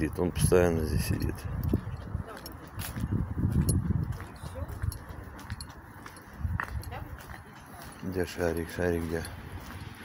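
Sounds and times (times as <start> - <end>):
footsteps on paving stones: 0.0 - 10.0.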